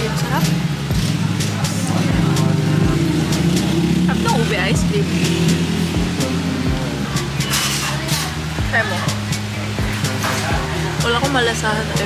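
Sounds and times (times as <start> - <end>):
street noise: 0.0 - 12.0
vehicle engine humming: 0.0 - 12.0.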